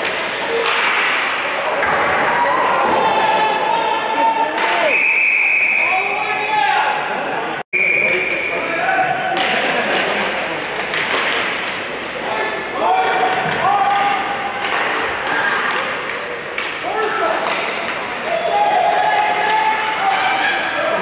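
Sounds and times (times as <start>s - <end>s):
hockey sticks and puck clacking: 0.0s - 3.6s, 9.2s - 21.0s.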